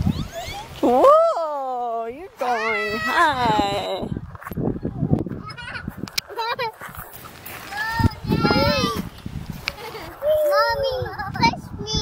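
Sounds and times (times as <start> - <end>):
child's high-pitched calls: 2.4 - 3.4, 7.7 - 9.1.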